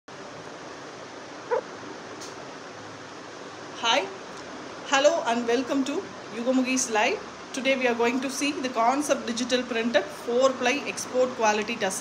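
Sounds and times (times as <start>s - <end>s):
steady background hiss: 0.1s - 12.0s.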